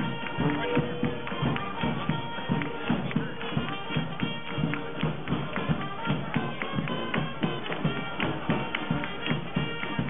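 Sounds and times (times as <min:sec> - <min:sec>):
horns holding notes: 0:00.0 - 0:10.0
steady drum beat: 0:00.0 - 0:10.0.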